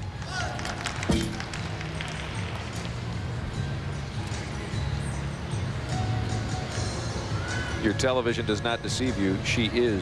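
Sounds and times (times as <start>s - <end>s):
background music: 0.0s - 10.0s.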